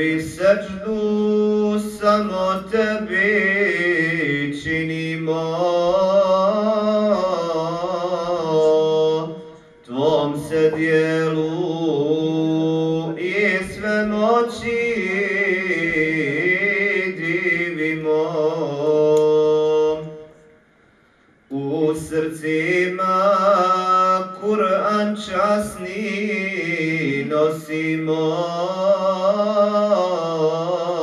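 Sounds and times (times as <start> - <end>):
man chanting devotional melody: 0.0 - 20.6, 21.4 - 31.0.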